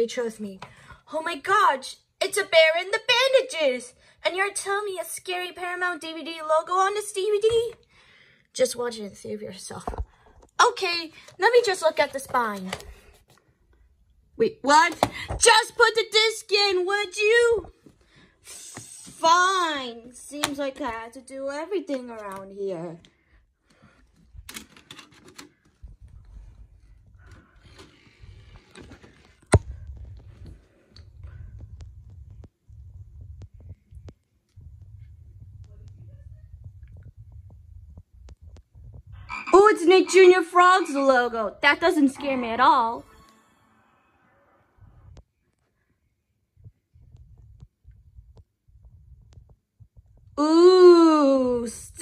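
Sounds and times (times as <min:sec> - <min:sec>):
low rumble: 0:29.6 - 0:39.4.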